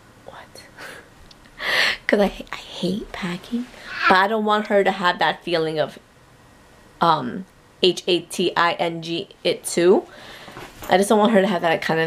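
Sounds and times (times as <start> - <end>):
woman whispering: 0.3 - 0.8
breathy exhale: 3.7 - 4.1, 10.1 - 10.7.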